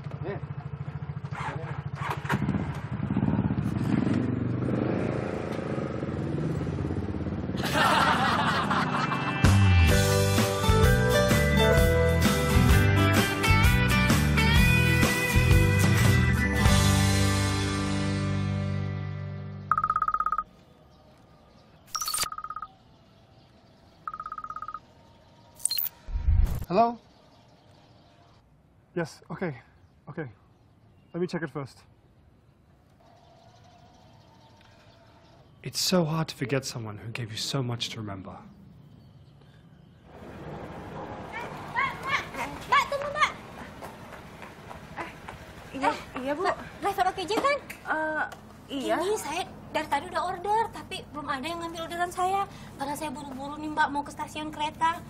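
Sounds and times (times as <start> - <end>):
motorcycle engines revving: 0.0 - 9.4
mobile phone ringing: 19.7 - 20.5, 21.9 - 22.7, 24.1 - 24.8.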